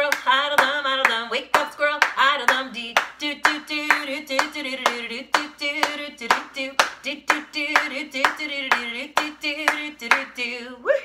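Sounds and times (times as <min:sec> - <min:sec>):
hand clapping: 0:00.0 - 0:10.4
woman singing: 0:00.0 - 0:11.0.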